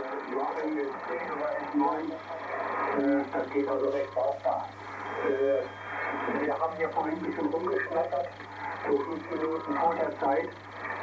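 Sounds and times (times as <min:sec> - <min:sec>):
man talking over radio: 0:00.0 - 0:10.7.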